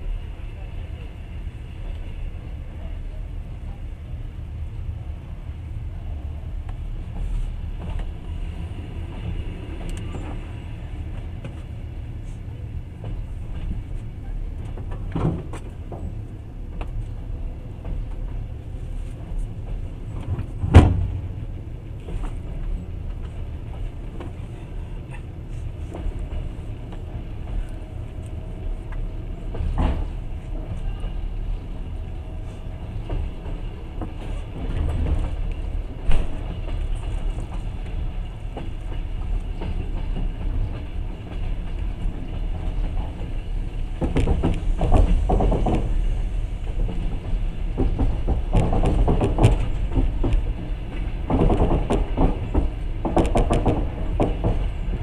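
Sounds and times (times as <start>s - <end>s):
train rumble from inside carriage: 0.0s - 55.0s.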